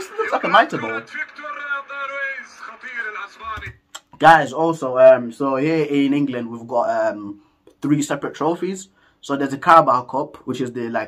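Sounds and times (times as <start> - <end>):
close voice: 0.0 - 9.6
man talking: 0.0 - 11.0.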